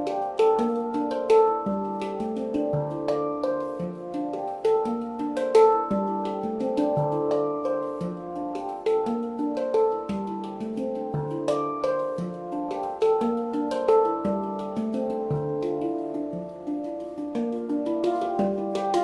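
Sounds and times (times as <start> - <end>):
handpan played by hand: 0.0 - 19.0.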